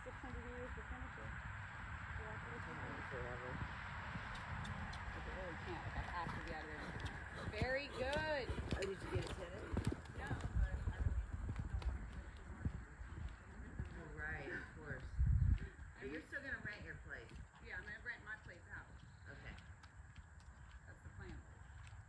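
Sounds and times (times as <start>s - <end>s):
horse hoofbeats on sand: 4.3s - 22.0s.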